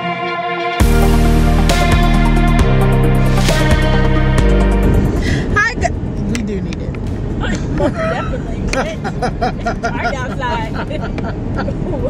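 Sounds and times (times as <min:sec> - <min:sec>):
woman laughing: 0:07.4 - 0:12.0
woman talking: 0:09.8 - 0:12.0.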